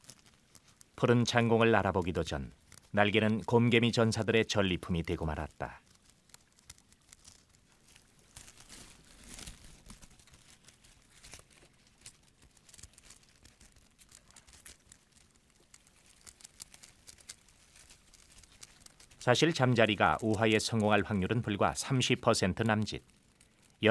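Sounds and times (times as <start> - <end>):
faint crackling and crinkling clicks: 0.0 - 23.9.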